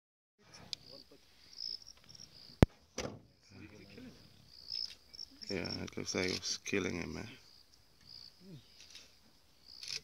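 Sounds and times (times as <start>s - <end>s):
crickets chirping: 0.4s - 10.0s.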